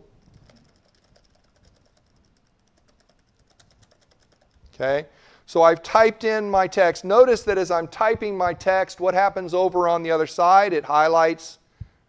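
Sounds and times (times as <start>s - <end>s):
quick typing on computer keyboard: 0.2s - 4.8s.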